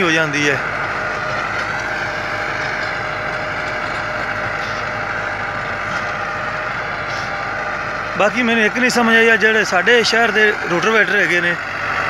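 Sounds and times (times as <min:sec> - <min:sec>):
tractor diesel engine under load: 0:00.0 - 0:12.0.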